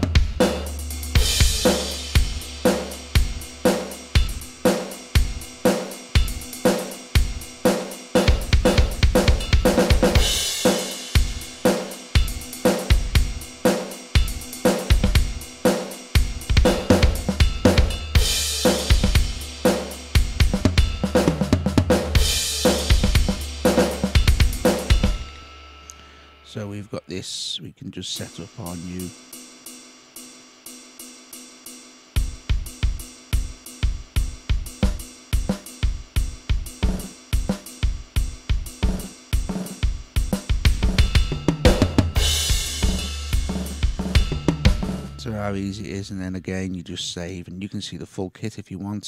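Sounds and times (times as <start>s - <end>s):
drum machine rock beat: 0.0s - 26.2s, 28.0s - 46.8s
cymbal crashes: 0.5s - 7.2s, 8.2s - 21.0s, 22.0s - 26.5s, 40.8s - 45.3s.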